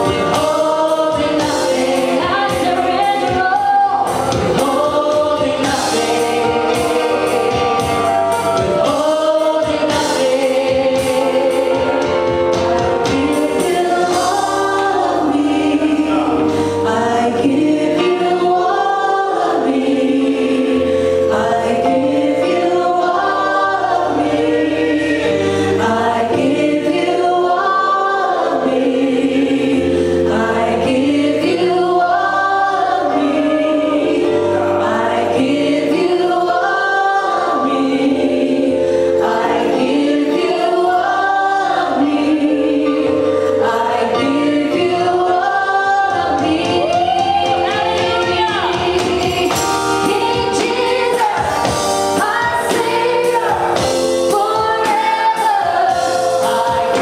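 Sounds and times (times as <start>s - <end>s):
women singing in harmony: 0.0s - 57.0s.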